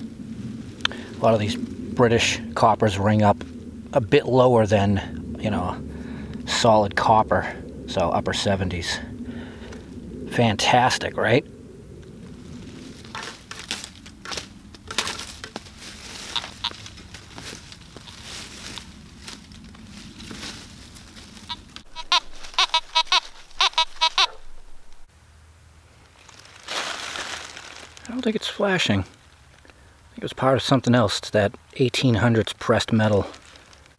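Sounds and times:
rustle: 0:00.0 - 0:11.4, 0:12.0 - 0:33.9
twigs snapping: 0:09.3 - 0:10.1, 0:12.0 - 0:25.0, 0:26.0 - 0:28.3, 0:33.2 - 0:33.9
footsteps crunching dry leaves: 0:12.2 - 0:25.0, 0:26.0 - 0:29.6, 0:33.1 - 0:33.9.

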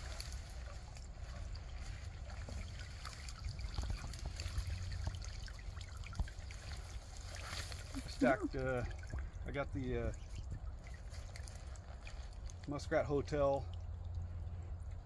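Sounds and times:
water trickling and splashing: 0:00.0 - 0:15.0.

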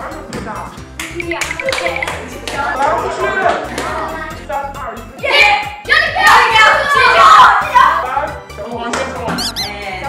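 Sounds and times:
boys shouting excitedly: 0:05.2 - 0:08.1.

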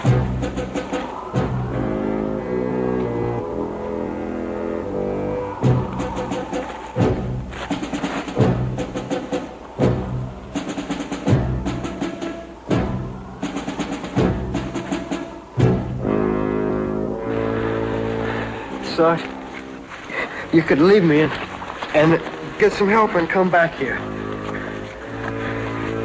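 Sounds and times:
brass chords: 0:00.0 - 0:06.1, 0:07.0 - 0:21.2, 0:22.0 - 0:26.0
timpani strokes: 0:00.0 - 0:20.6
sustained orchestral chords: 0:00.0 - 0:26.0.

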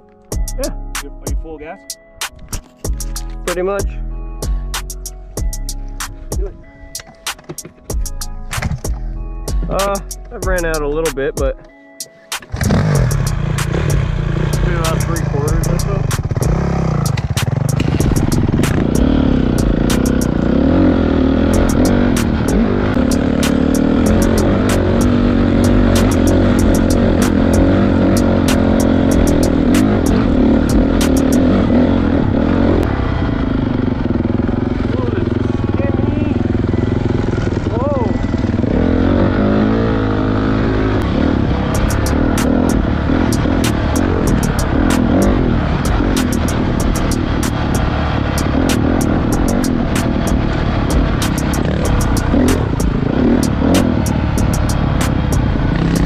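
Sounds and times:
dirt bike engine revving: 0:12.5 - 0:56.0
sharp clicks: 0:16.1 - 0:19.0, 0:26.0 - 0:27.6, 0:51.2 - 0:52.8.

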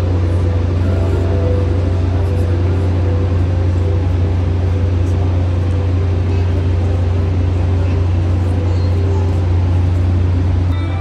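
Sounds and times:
loud low drone: 0:00.0 - 0:11.0
murmur of voices: 0:00.0 - 0:11.0.

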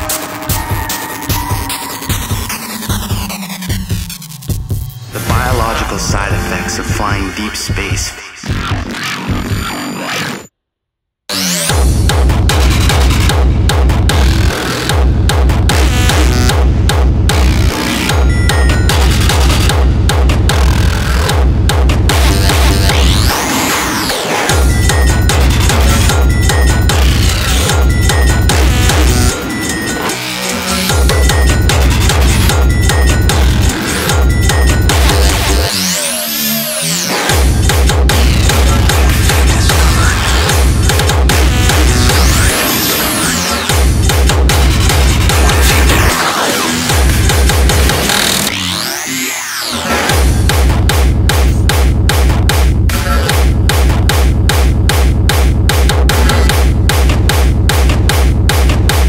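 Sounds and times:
synths: 0:00.0 - 0:10.5, 0:11.3 - 0:51.6
heavy kick drum beat: 0:11.7 - 0:23.2, 0:24.5 - 0:29.9, 0:30.9 - 0:35.6, 0:37.3 - 0:42.5, 0:43.7 - 0:46.1, 0:46.9 - 0:48.5, 0:50.1 - 0:59.0.

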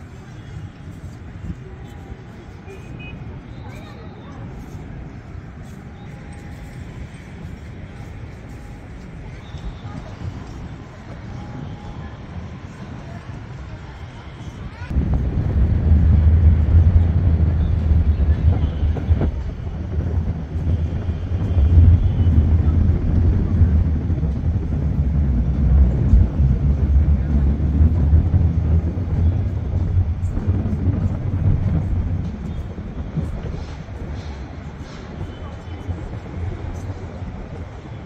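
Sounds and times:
wind buffeting microphone: 0:00.0 - 0:38.0.

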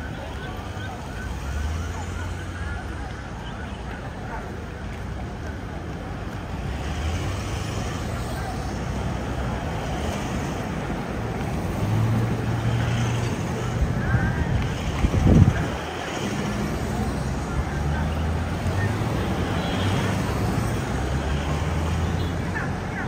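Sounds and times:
vehicles driving past: 0:00.0 - 0:23.0.

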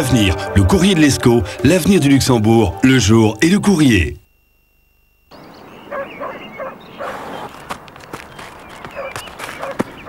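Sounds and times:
dog barking: 0:05.9 - 0:07.3, 0:08.9 - 0:09.9.

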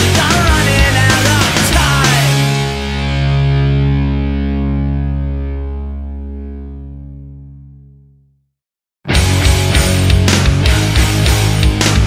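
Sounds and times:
distorted electric guitar chord: 0:00.0 - 0:08.2, 0:09.1 - 0:12.0.

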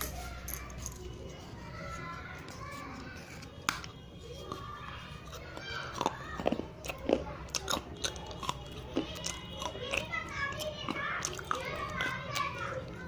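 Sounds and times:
children's voices: 0:00.0 - 0:13.0
clay crunching when chewed: 0:02.5 - 0:13.0.

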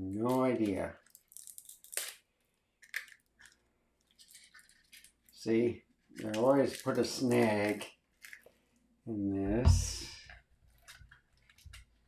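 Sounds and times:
wrapping rustle: 0:00.2 - 0:08.8, 0:10.3 - 0:12.0.

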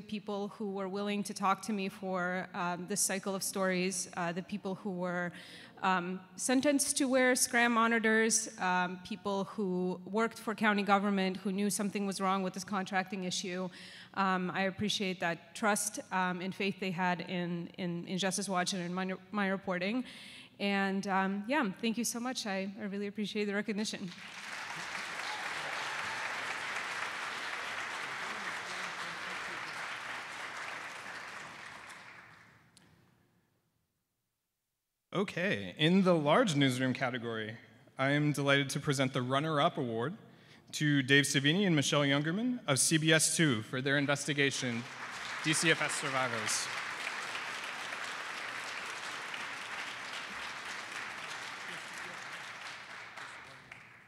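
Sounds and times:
audience applauding: 0:24.1 - 0:32.5, 0:44.3 - 0:54.0.

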